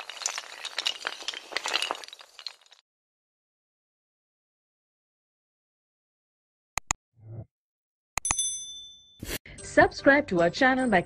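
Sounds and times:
bright high ding: 0:08.2 - 0:09.4.

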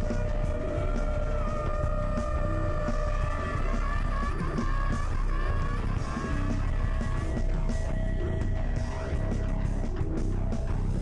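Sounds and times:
live improvised rock music: 0:00.0 - 0:11.0.

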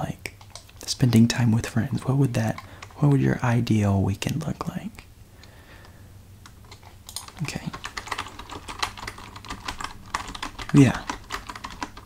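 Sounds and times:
typing on computer keyboard: 0:00.4 - 0:00.8, 0:06.6 - 0:12.0.

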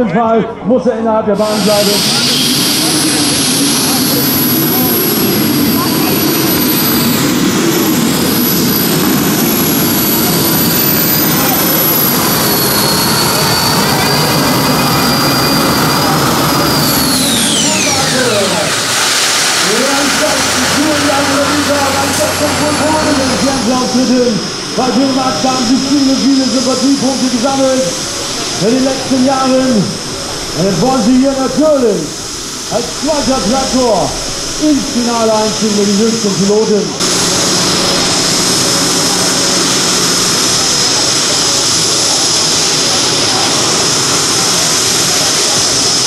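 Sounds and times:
gas turbine engines whining: 0:00.0 - 0:46.0
lower engine note: 0:01.2 - 0:46.0.

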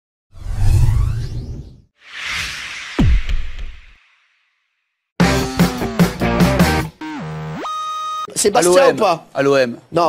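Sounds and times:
whoosh with deep rumble: 0:00.4 - 0:04.0.

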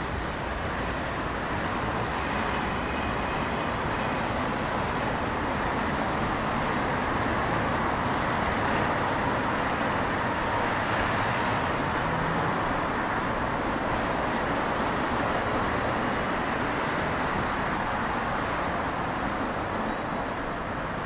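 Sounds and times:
cars and buses running past: 0:00.0 - 0:21.0.

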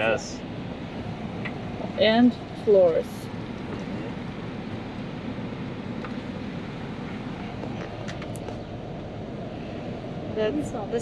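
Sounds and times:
street noise: 0:00.0 - 0:11.0
van engine idling: 0:00.0 - 0:11.0.

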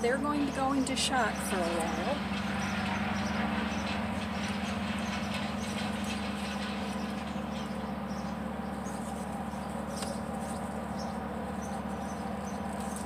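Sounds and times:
low machine hum: 0:00.0 - 0:13.0.

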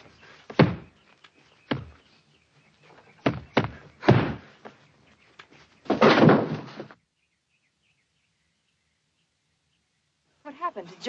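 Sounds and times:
boxing punch thuds: 0:00.5 - 0:00.9, 0:03.2 - 0:04.5.

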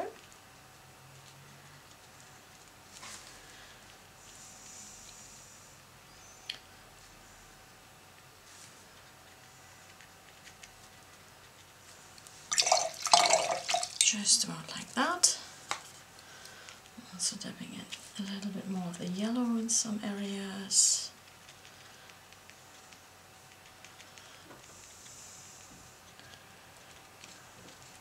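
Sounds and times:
paintbrush rinsed in water jar: 0:12.5 - 0:14.4.

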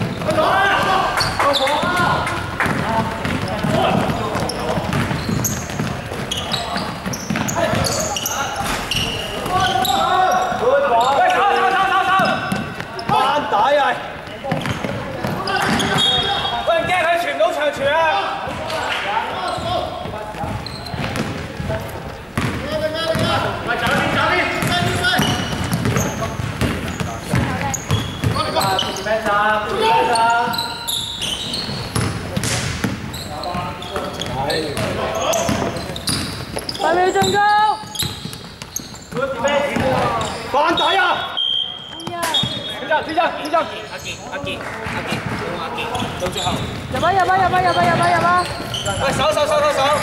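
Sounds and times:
players shouting: 0:00.0 - 0:05.4, 0:06.3 - 0:20.1
basketball bouncing on wooden court: 0:01.2 - 0:11.2, 0:12.2 - 0:13.3, 0:14.3 - 0:16.4, 0:18.4 - 0:18.7, 0:19.5 - 0:29.0, 0:31.3 - 0:40.4, 0:41.9 - 0:42.8, 0:44.4 - 0:49.8.

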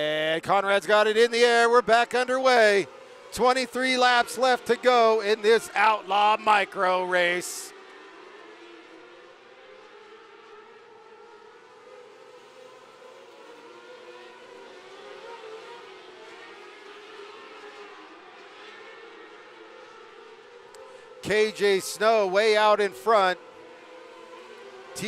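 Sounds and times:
racing car engines droning: 0:00.0 - 0:25.0.

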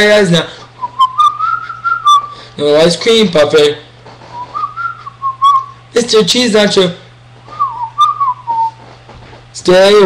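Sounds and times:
faint steady hum: 0:00.0 - 0:10.0
person whistling: 0:00.8 - 0:02.5, 0:04.3 - 0:05.8, 0:07.5 - 0:08.8.

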